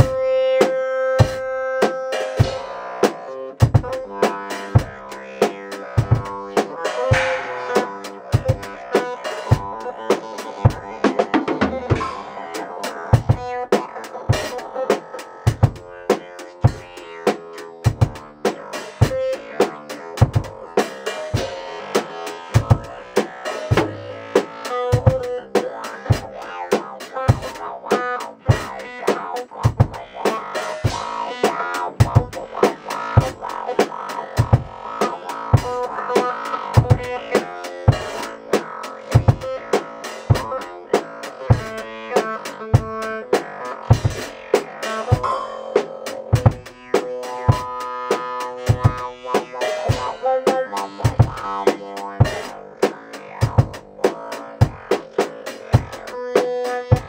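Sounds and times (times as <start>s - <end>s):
drum kit beat: 0.0s - 57.0s
talkbox synth keyboard: 0.0s - 57.0s.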